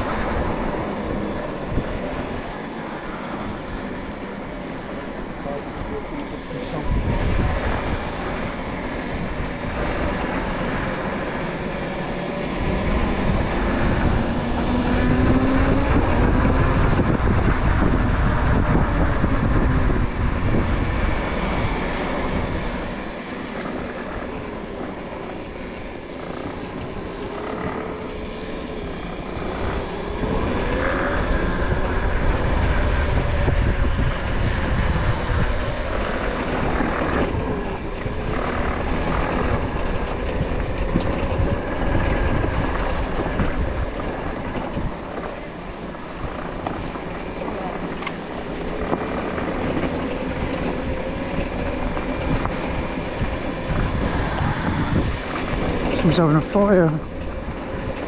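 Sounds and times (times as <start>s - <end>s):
wind rushing on microphone: 0.0s - 58.0s.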